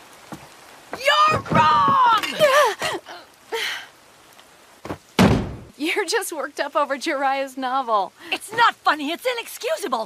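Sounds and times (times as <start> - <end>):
cartoon impact slam: 5.2 - 5.7.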